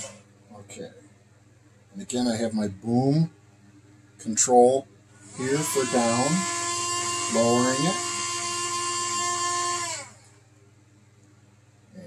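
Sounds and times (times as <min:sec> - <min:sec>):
winch motor whining: 0:05.2 - 0:10.4.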